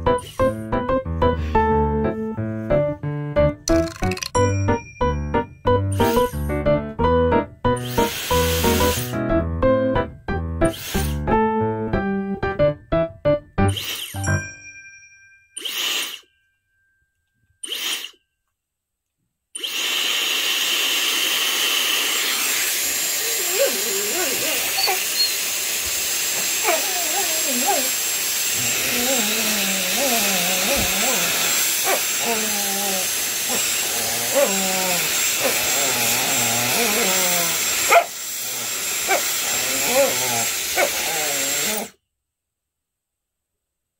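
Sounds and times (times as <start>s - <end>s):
tinkling musical jingle: 3.7s - 6.5s, 13.7s - 17.5s
dog sharp rising squeak: 5.9s - 6.6s, 13.6s - 14.4s, 17.6s - 18.2s, 22.2s - 25.6s, 26.4s - 28.0s, 28.6s - 41.9s
hair dryer whooshing: 7.8s - 9.1s, 19.6s - 41.9s
dog grumbling whines: 23.1s - 25.4s, 26.4s - 28.0s, 28.6s - 42.0s.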